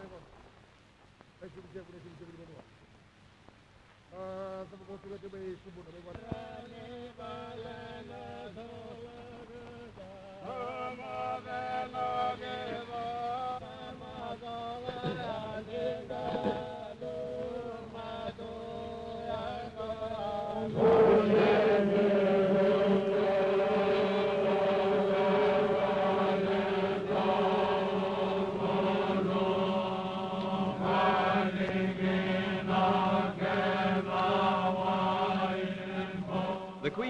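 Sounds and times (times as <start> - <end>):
voices chanting long notes: 6.3 - 37.0.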